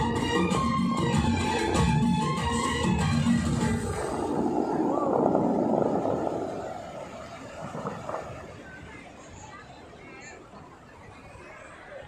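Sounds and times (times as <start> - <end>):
water jets rushing spray: 2.5 - 10.2.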